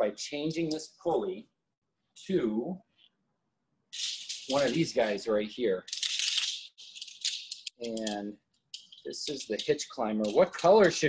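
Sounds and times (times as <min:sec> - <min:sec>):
metal climbing hardware jangling: 0:05.9 - 0:11.0.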